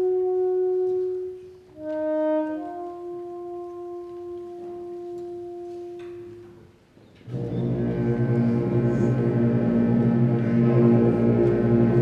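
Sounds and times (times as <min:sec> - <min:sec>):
concert band playing: 0:07.3 - 0:12.0
low brass chord: 0:07.3 - 0:12.0.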